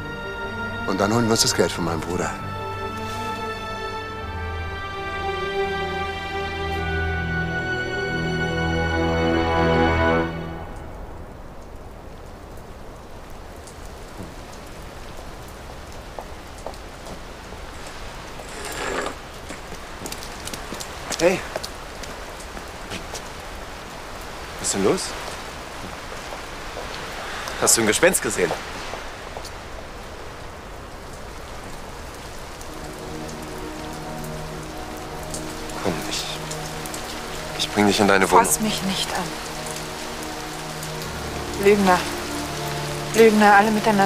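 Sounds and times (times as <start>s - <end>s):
low held musical chord: 0.0s - 11.6s, 32.6s - 44.0s
light rain with drips: 0.0s - 44.0s.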